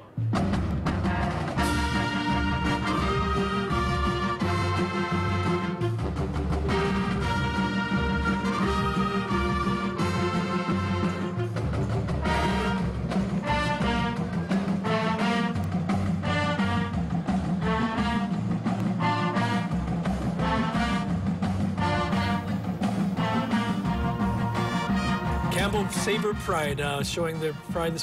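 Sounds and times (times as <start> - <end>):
brass and woodwind band playing: 1.0 - 28.0.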